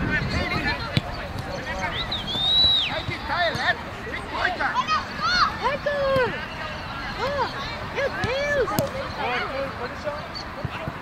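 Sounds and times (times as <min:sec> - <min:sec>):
players and spectators shouting: 0:00.3 - 0:11.0
shrill whistle: 0:01.8 - 0:03.4.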